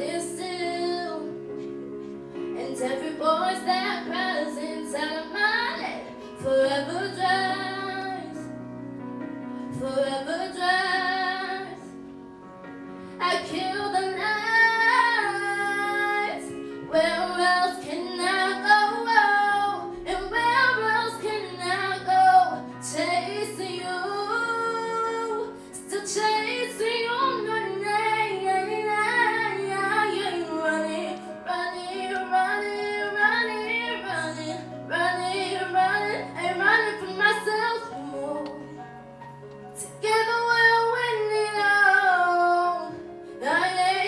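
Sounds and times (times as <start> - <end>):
girl singing into microphone: 0.0 - 8.6, 9.6 - 12.1, 13.0 - 38.8, 39.8 - 44.0
instrumental accompaniment chords: 0.0 - 44.0.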